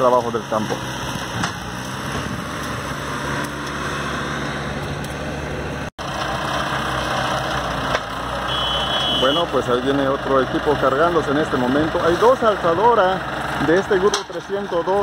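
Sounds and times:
tractor engine running: 0.0s - 15.0s.

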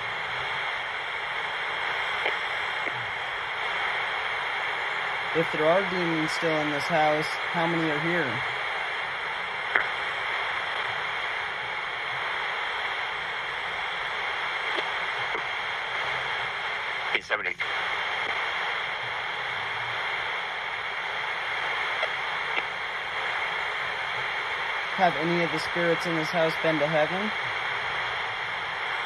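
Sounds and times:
radio static hiss: 0.0s - 29.0s.

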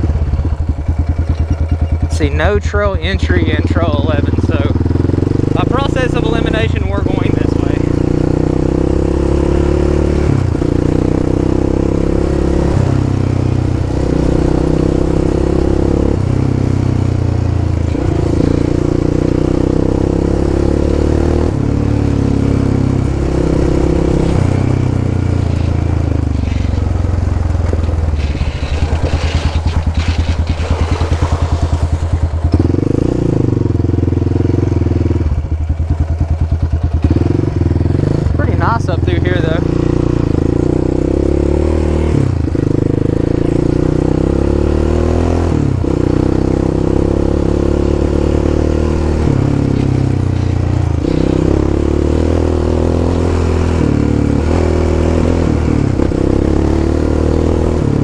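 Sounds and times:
four-stroke engine running: 0.0s - 58.0s.

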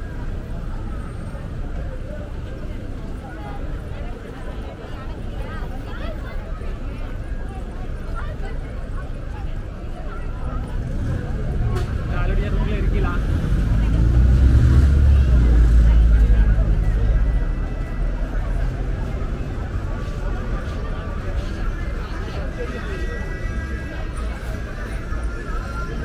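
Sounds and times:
crowd chatter: 0.0s - 26.0s
large vehicle engine rumble: 0.0s - 26.0s.

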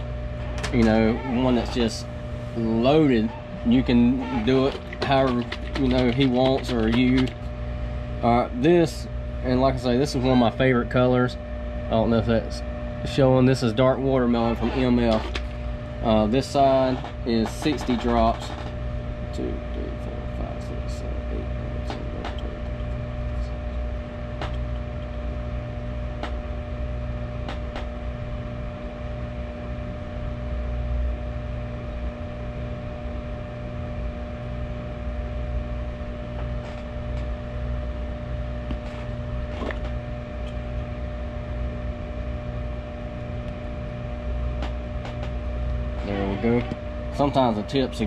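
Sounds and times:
appliance humming: 0.0s - 48.0s.

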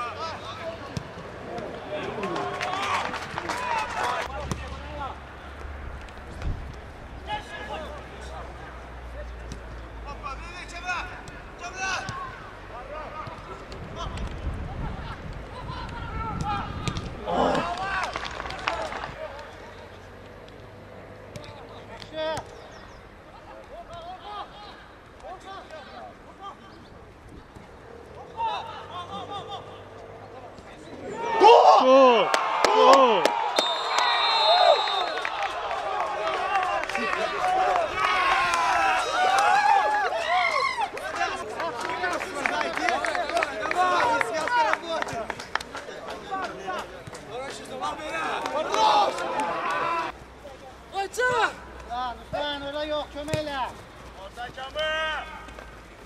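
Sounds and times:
players shouting: 0.0s - 5.7s, 14.9s - 19.7s, 23.3s - 26.7s, 28.2s - 56.0s
open-air field ambience: 0.0s - 56.0s
voices shouting: 28.2s - 45.0s, 47.6s - 50.2s.

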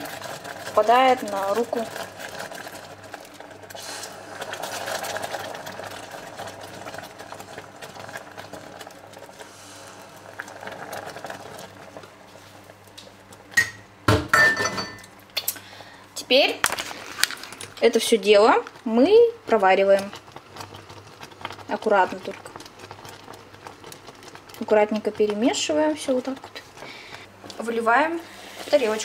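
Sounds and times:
caramel bubbling in saucepan: 0.0s - 14.5s, 15.2s - 29.0s
steady low electric hum: 0.0s - 29.0s
utensils knocking against pot: 13.6s - 15.1s.

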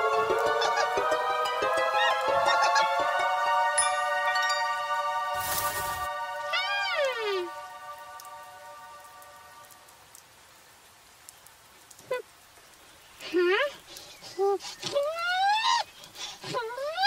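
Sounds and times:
held musical chord: 0.0s - 9.8s
cartoon animal-like cry: 2.0s - 3.0s
brief hiss: 5.4s - 6.1s.

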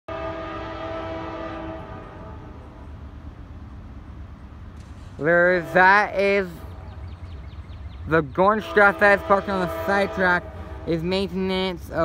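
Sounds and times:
locomotive air horn chord: 0.1s - 2.8s, 5.5s - 6.3s, 8.5s - 11.5s.

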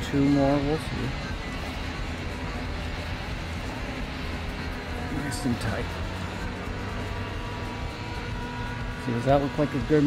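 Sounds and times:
distant engine rumble: 0.0s - 10.0s.

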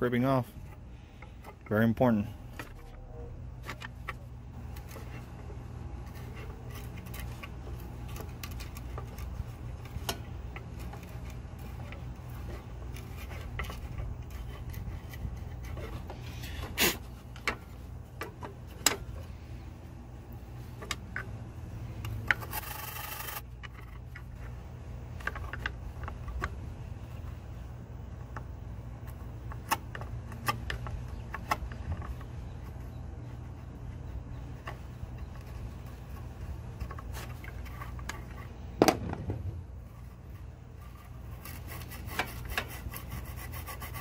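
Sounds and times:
steady low hum: 0.0s - 44.0s
wooden stick scraping circuit board: 3.6s - 19.5s, 20.8s - 38.7s, 39.8s - 44.0s.

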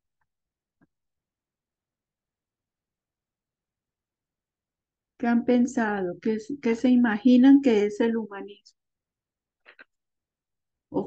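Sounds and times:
woman speaking: 5.2s - 8.8s.

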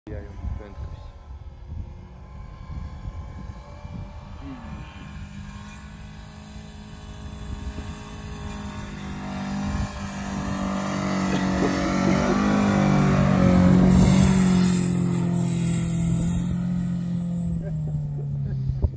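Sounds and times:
car engine pulling hard: 1.8s - 18.9s
thin high whine: 8.9s - 18.0s.

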